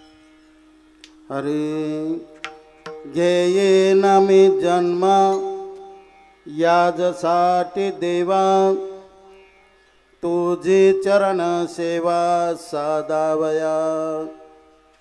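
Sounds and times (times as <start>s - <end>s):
man singing devotional melody: 1.1s - 9.6s, 10.2s - 15.0s.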